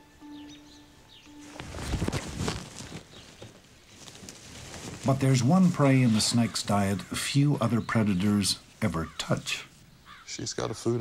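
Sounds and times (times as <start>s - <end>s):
soft background music: 0.0s - 4.0s
birds chirping: 0.0s - 11.0s
brush rustling and crackling underfoot: 1.3s - 10.2s.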